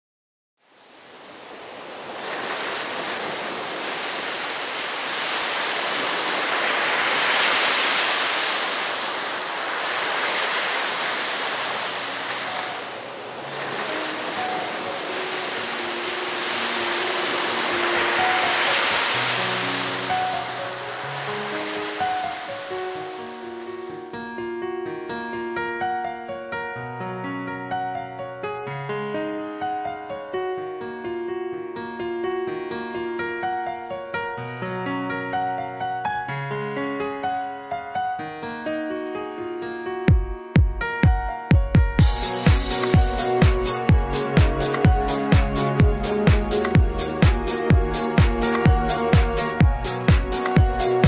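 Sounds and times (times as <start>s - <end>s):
ocean waves breaking: 0.8s - 24.1s, 42.1s - 51.0s
soft keyboard music: 11.6s - 51.0s.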